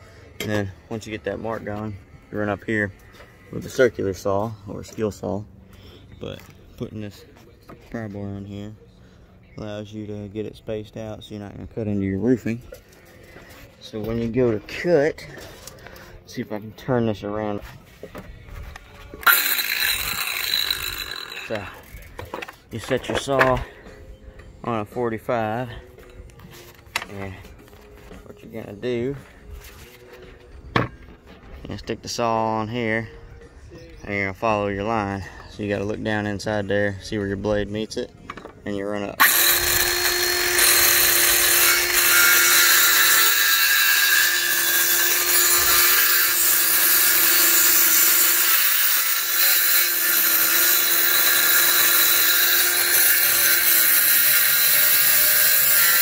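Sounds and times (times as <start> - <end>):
circular saw cutting wood: 19.1 - 22.1, 39.2 - 56.0.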